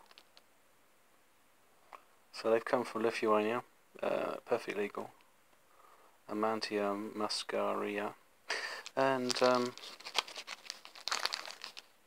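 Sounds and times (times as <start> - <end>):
plastic bag crinkling: 0.0 - 0.4, 8.6 - 12.0.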